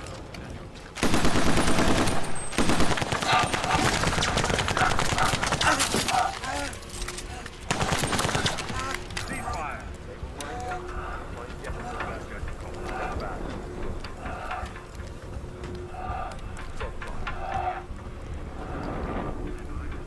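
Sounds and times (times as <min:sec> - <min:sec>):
rapid automatic gunfire: 0:01.0 - 0:06.1, 0:07.7 - 0:09.1.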